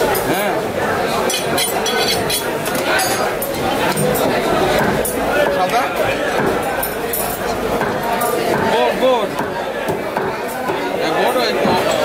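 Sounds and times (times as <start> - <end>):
people talking: 0.0 - 12.0
cleaver chopping meat on wood: 4.3 - 6.6, 7.8 - 10.9.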